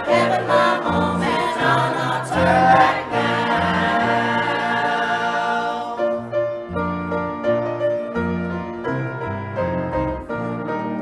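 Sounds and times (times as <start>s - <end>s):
choir singing: 0.0s - 6.6s
piano playing: 0.0s - 11.0s.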